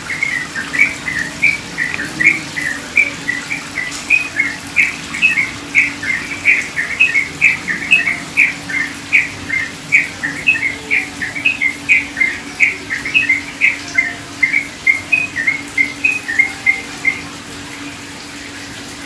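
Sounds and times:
small birds chirping: 0.0s - 17.4s
trickling water: 0.0s - 19.0s.

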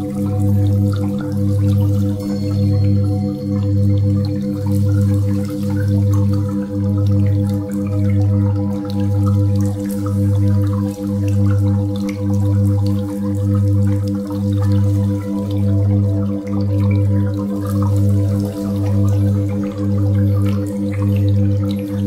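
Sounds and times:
drip-like sparkles: 0.0s - 22.0s.

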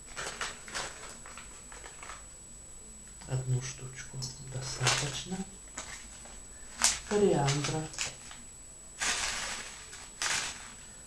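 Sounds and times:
paper packet rustling: 0.0s - 2.3s, 4.8s - 8.4s, 9.0s - 11.0s.

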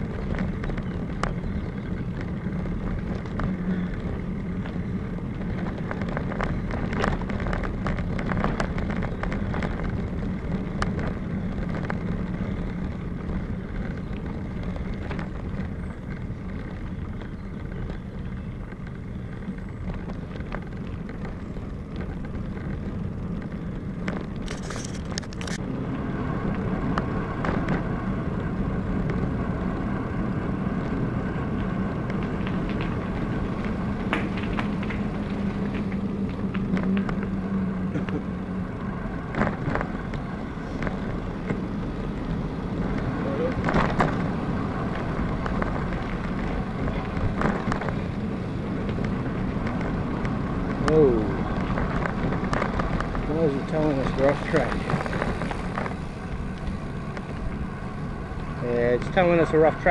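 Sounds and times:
bicycle clicks and rattles: 0.0s - 25.7s, 26.3s - 59.9s
bicycle tyres rolling over gravel: 0.0s - 59.9s.

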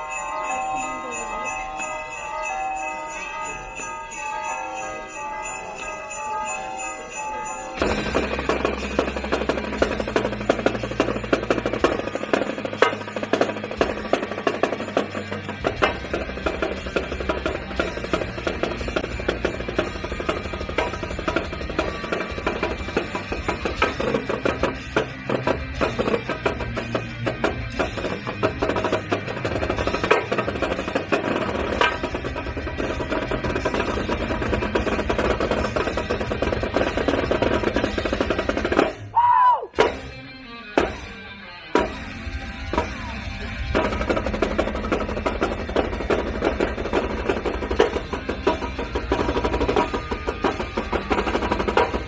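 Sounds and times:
marching snare drums: 7.8s - 39.0s, 43.7s - 52.0s
sharp drum hit: 39.8s - 40.1s.

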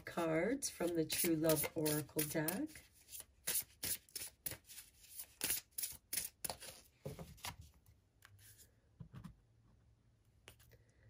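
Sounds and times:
cards being shuffled: 1.1s - 7.6s.

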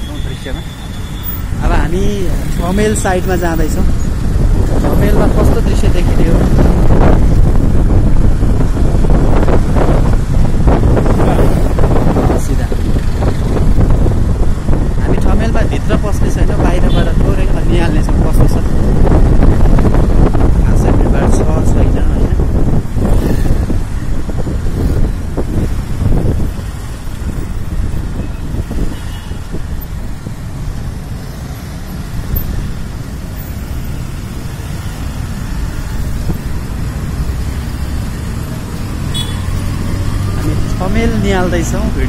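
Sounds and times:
traffic engine rumble: 0.0s - 42.0s.

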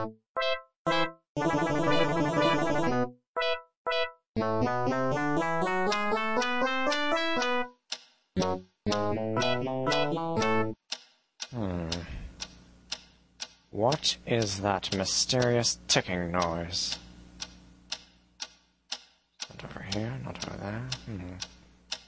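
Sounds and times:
electronic keyboard music: 0.0s - 7.8s, 8.4s - 10.8s.

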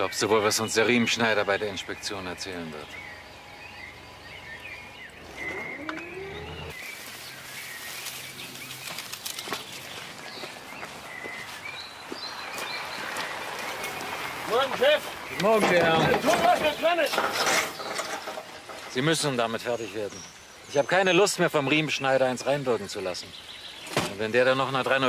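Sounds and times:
faint bird chirps: 0.0s - 9.6s
rising tone: 4.8s - 6.8s.

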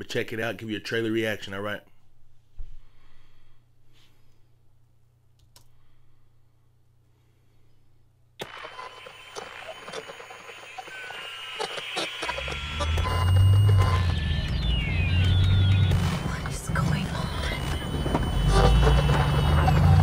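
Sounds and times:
high gliding tones: 10.3s - 20.0s
film trailer soundtrack: 13.1s - 19.7s.

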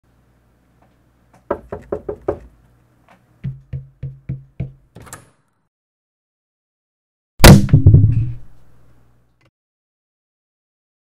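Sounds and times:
knocking on wooden door: 1.4s - 2.5s, 3.4s - 4.8s.

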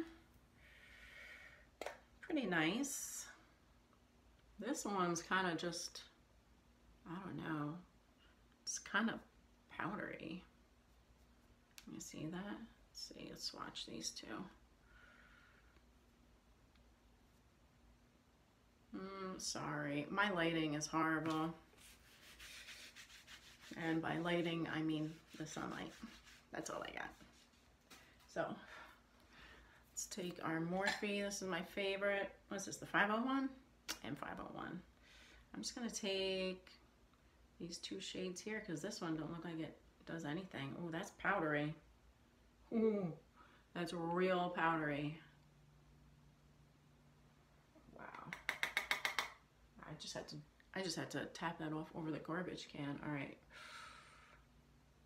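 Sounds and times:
soft rubbing: 21.3s - 29.1s.

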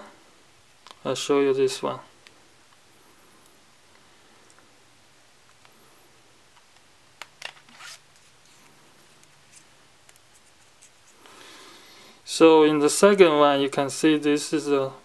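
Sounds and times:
smartphone handling clicks and rustles: 6.5s - 11.1s.

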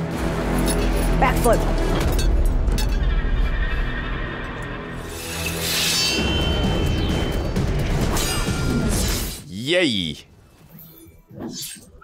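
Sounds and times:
dramatic film music: 0.0s - 11.6s.

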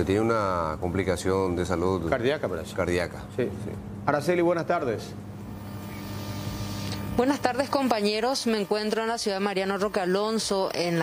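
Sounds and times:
background noise with low hum: 0.0s - 11.0s.

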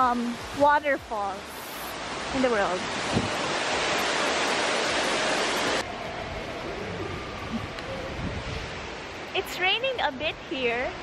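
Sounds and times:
indoor waterfall rushing: 0.0s - 11.0s.

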